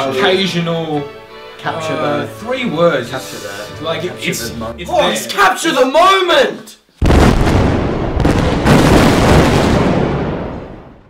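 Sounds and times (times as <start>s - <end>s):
explosion boom and rumble: 7.0s - 11.0s.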